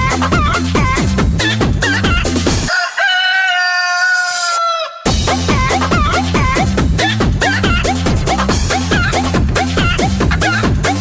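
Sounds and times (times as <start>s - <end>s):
rooster crowing: 2.7s - 5.1s
electronic dance beat: 5.1s - 11.0s.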